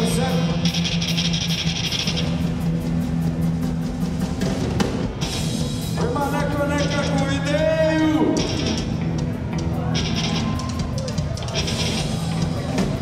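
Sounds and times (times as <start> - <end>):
bass line: 0.0 - 13.0
drum kit beat with cymbals: 0.0 - 13.0
electric guitars: 0.0 - 13.0.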